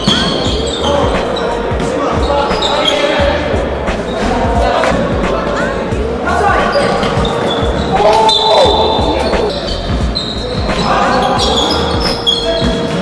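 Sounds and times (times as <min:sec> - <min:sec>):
sneakers squeaking on floor: 0:00.0 - 0:05.1, 0:06.5 - 0:13.0.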